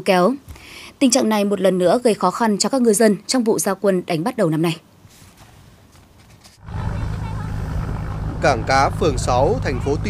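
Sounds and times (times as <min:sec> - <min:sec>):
fishing boat engines rumbling: 0:06.6 - 0:10.0.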